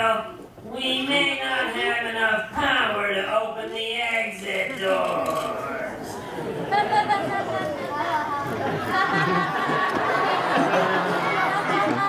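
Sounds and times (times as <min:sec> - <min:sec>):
audience chattering: 0:04.4 - 0:12.0.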